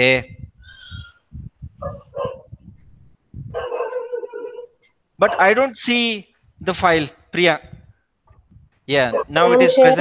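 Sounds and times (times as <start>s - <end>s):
animal calling: 0.6s - 2.6s.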